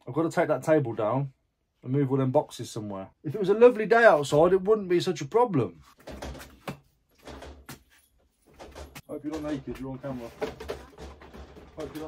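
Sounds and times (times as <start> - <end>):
objects knocking and rumbling: 6.0 - 12.0.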